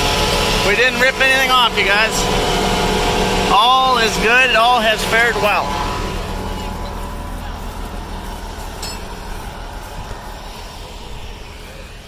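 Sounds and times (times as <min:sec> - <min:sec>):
tractor diesel engine idling: 0:00.0 - 0:12.0.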